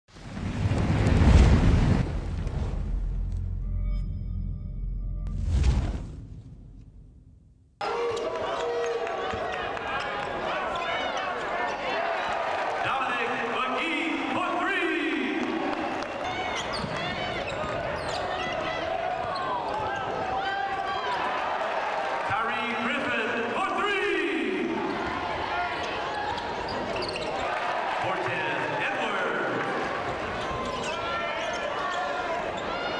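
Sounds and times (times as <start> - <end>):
voices echoing in arena: 7.8 - 32.9
sneakers squeaking: 16.2 - 20.2, 25.8 - 27.6, 30.1 - 32.9.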